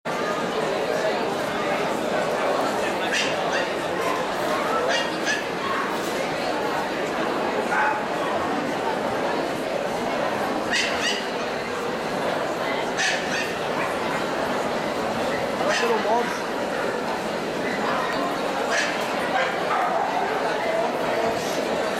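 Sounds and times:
crowd chatter: 0.0s - 21.9s
dog yapping: 10.7s - 11.3s, 13.0s - 13.9s.

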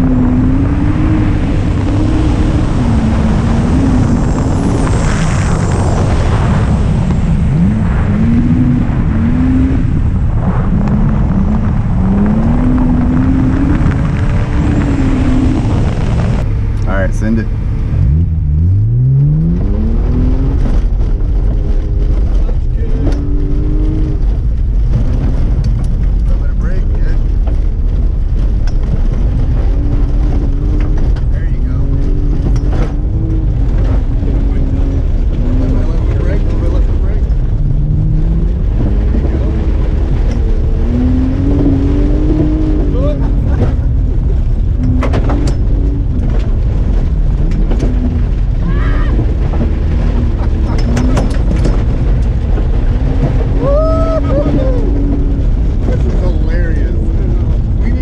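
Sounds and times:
car engine revving hard: 0.0s - 58.0s.

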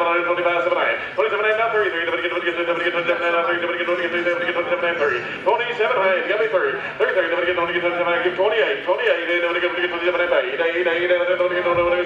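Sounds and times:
man auctioneer chanting: 0.0s - 12.0s.

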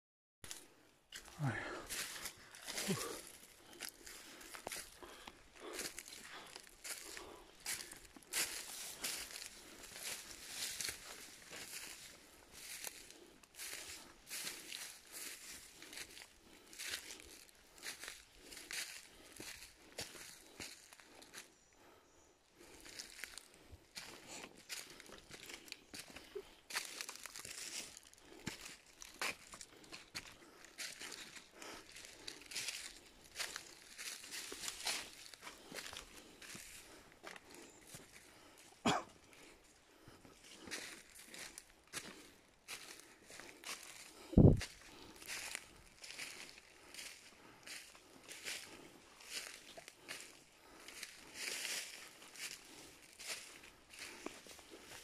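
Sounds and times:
footsteps crunching dry leaves: 1.2s - 21.4s, 22.6s - 38.5s, 40.2s - 55.0s.

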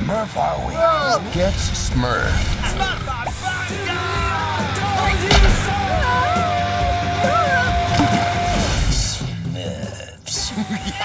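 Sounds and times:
trailer music: 1.2s - 9.5s
thump: 5.3s - 5.8s.

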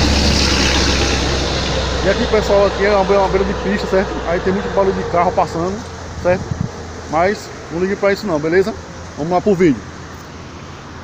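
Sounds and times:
road traffic rumble and hiss: 0.0s - 11.0s.

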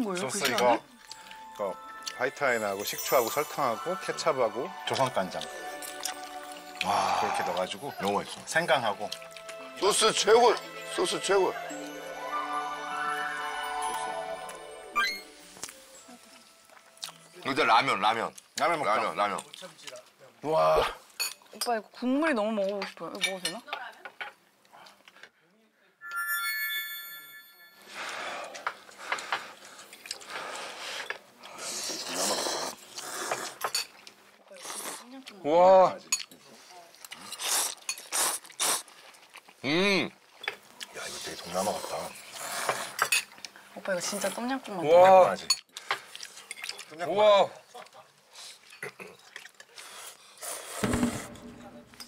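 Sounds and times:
bright chime: 0.7s - 8.6s, 9.8s - 17.4s, 26.0s - 28.1s
people slurping noodles: 5.0s - 7.8s, 27.9s - 33.7s, 34.5s - 35.2s, 37.0s - 40.0s, 40.9s - 43.2s, 47.8s - 51.3s.

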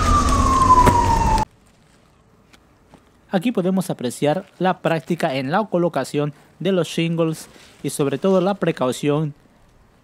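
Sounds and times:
emergency siren falling tone: 0.0s - 1.5s.

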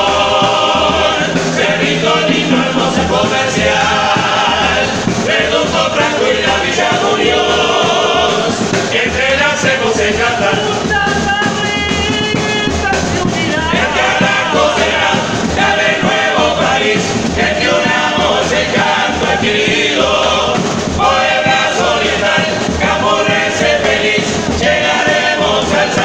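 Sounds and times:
men's chorus singing in harmony: 0.0s - 26.0s.

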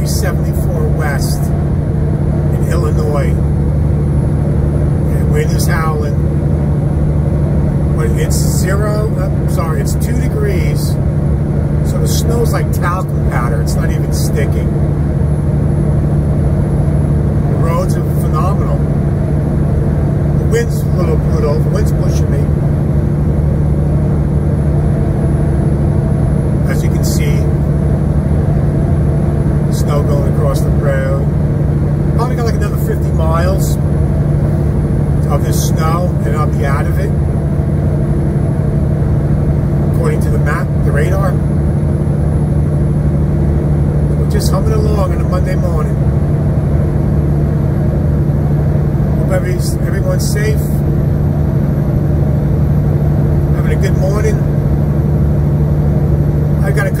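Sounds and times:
truck engine and road drone: 0.0s - 57.0s.

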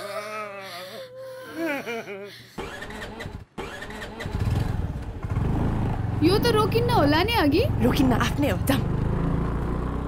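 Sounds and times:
motor scooter engine running: 2.7s - 10.0s.

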